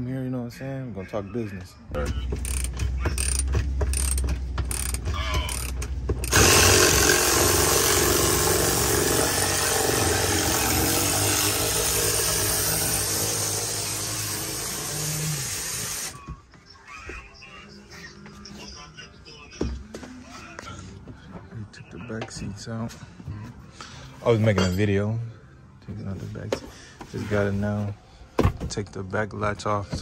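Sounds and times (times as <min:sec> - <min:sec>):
cordless ratchet clicking: 0:02.4 - 0:06.9.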